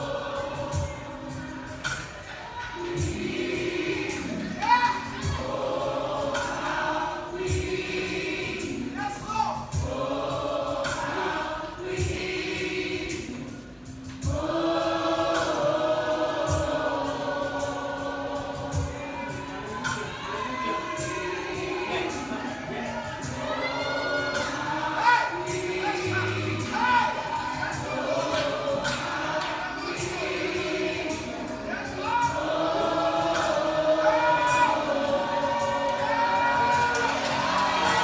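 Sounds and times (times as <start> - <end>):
choir singing gospel song: 0.0 - 38.0.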